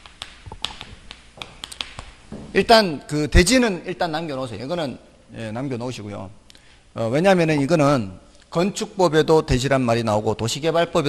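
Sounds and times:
chalk tapping on a chalkboard: 0.0s - 2.5s.

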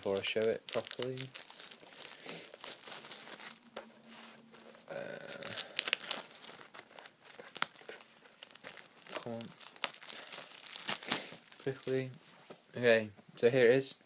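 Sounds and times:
plastic wrap tearing and crinkling: 0.0s - 12.1s.

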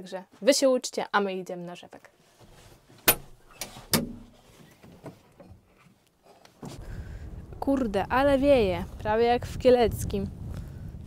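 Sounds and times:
wind buffeting microphone: 6.6s - 11.0s.

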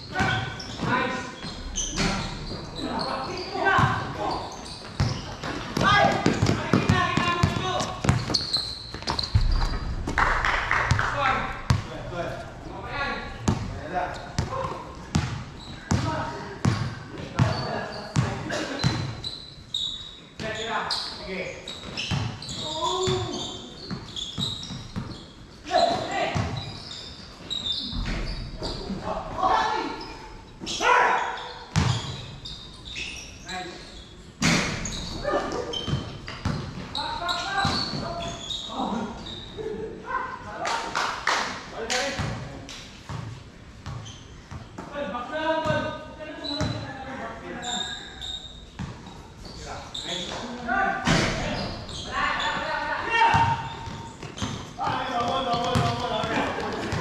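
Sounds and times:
basketball bouncing on hard court: 4.9s - 11.0s, 14.4s - 19.1s, 31.7s - 32.1s, 53.3s - 57.0s.

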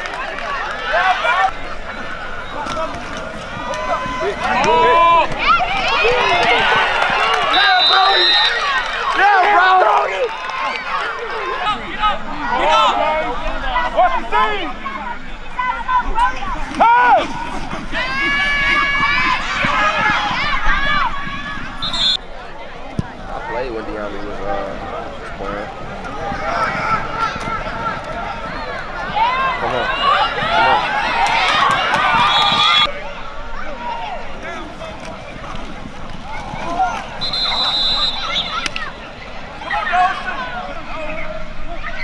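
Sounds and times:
crowd shouting: 0.0s - 42.0s
short high whistle blast: 37.2s - 38.7s.

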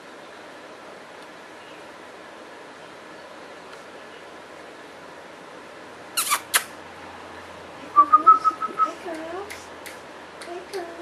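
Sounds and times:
kissing smacks: 6.2s - 6.8s, 8.2s - 10.8s.

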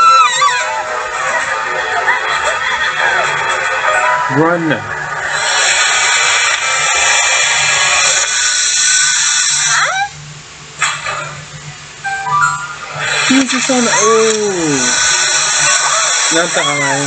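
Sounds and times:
steady low hum: 0.0s - 17.0s
cartoon music and sound effects: 12.0s - 17.0s.

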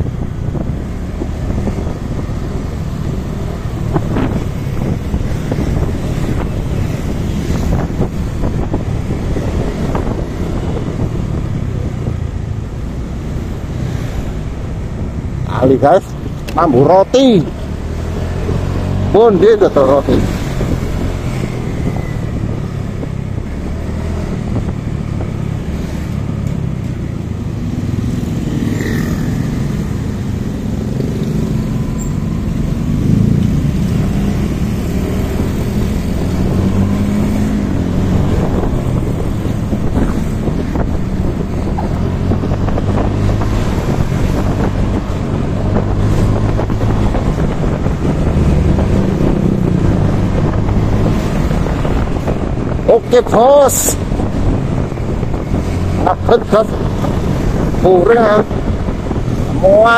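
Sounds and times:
wind noise on microphone: 0.0s - 59.9s.

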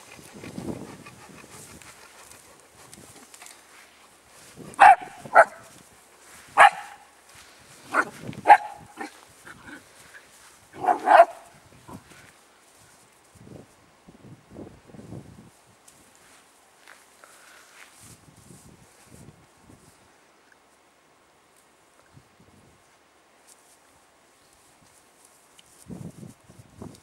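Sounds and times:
dog paws on grass: 0.0s - 13.9s, 15.1s - 20.1s, 23.4s - 27.0s
dog barking: 4.8s - 5.6s, 6.6s - 7.0s, 7.9s - 9.1s, 10.8s - 11.5s.

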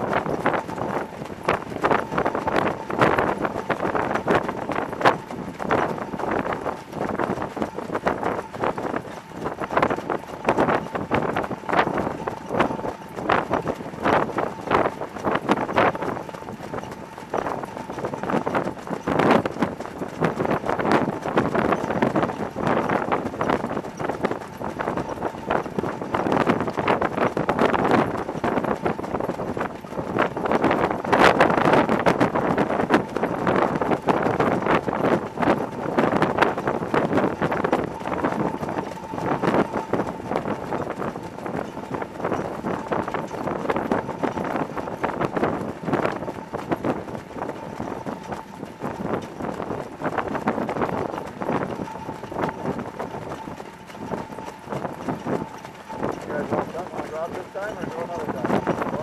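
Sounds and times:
faint steady whine: 0.0s - 59.0s
wind and wheels rushing: 0.0s - 59.0s.

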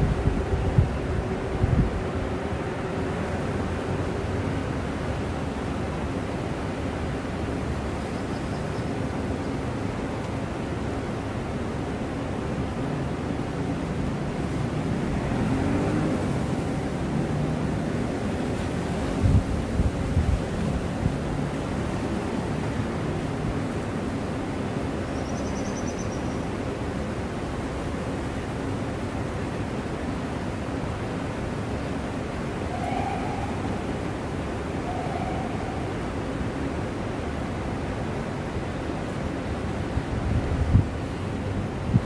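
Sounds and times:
wind on microphone: 0.0s - 2.1s, 19.1s - 21.3s, 40.0s - 41.0s.

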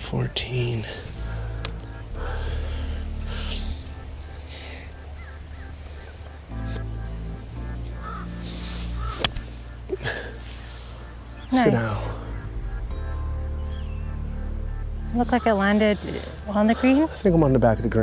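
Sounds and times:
background music with bass line: 0.0s - 18.0s
golf club striking ball: 9.0s - 9.5s.

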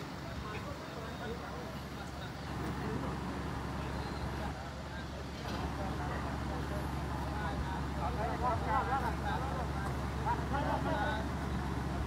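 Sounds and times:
people talking: 0.0s - 12.0s
traffic engine hum: 0.0s - 12.0s.

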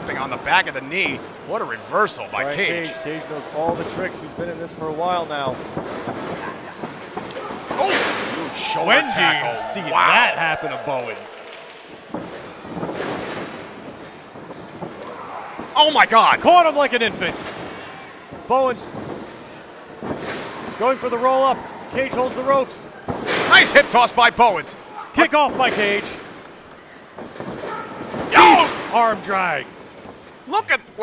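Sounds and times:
loud shouted exclamation: 7.5s - 11.5s, 28.3s - 28.9s.

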